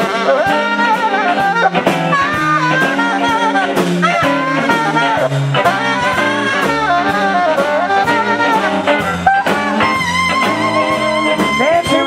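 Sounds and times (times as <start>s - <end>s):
bass: 0.0s - 12.0s
electric guitar: 0.0s - 12.0s
saxophones playing a melody: 0.0s - 12.0s
steady drum beat: 0.0s - 12.0s.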